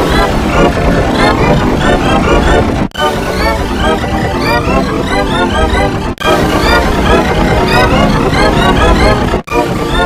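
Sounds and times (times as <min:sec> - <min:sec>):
distorted music: 0:00.0 - 0:10.0
pitch-shifted voices: 0:00.0 - 0:10.0.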